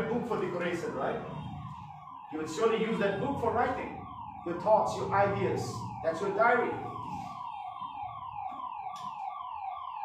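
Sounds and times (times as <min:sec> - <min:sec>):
electronic siren falling tones: 0:00.0 - 0:10.0.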